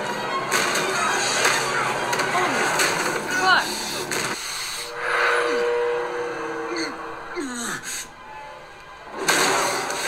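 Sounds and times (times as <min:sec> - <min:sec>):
two-tone drone: 0:04.8 - 0:09.1.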